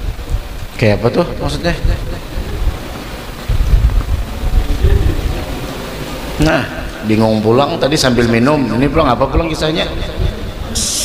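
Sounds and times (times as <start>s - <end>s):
low rumbling: 0.0s - 11.0s.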